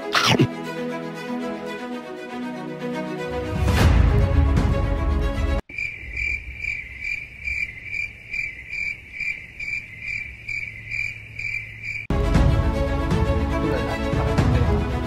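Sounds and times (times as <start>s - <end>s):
background music: 0.0s - 5.6s, 12.1s - 15.0s
crickets chirping: 5.7s - 12.1s.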